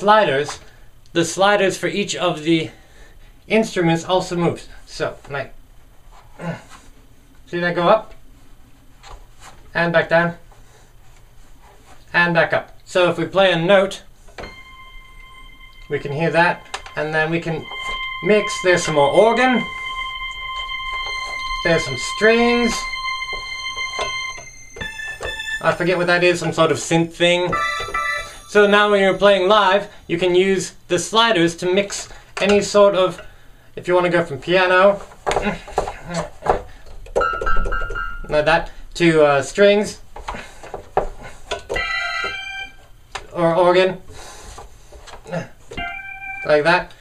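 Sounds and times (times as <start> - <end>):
steady high synth note: 14.4 - 30.4.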